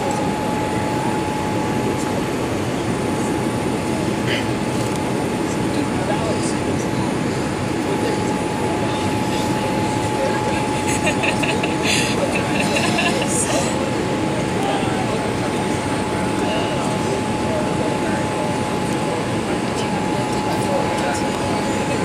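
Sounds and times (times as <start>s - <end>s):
airliner cabin airflow and engine noise: 0.0s - 22.0s
thin steady whine: 0.0s - 22.0s.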